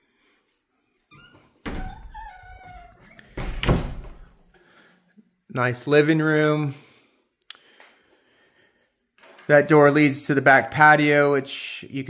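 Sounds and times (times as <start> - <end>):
closet door squeak: 1.0 - 4.4
closet doors thudding shut: 1.6 - 4.4.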